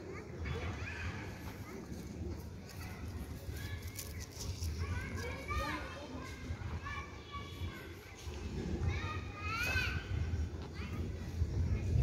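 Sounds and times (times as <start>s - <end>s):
distant children calling and chattering: 0.0s - 12.0s.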